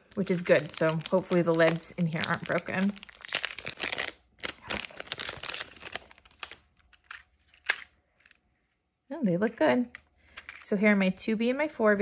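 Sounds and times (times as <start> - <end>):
plastic wrap crinkling: 0.0 - 8.5.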